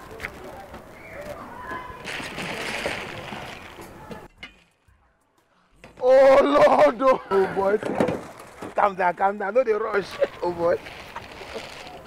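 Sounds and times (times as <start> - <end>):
water sloshing in bowl: 2.0 - 4.0.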